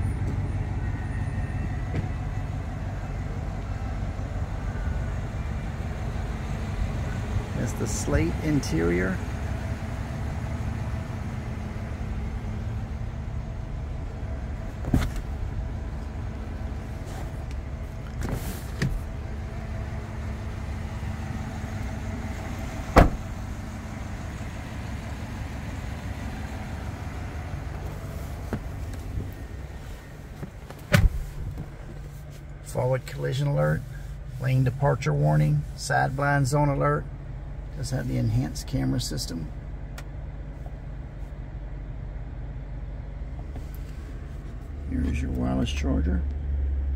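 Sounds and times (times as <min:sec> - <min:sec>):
truck engine idling: 0:00.0 - 0:46.9.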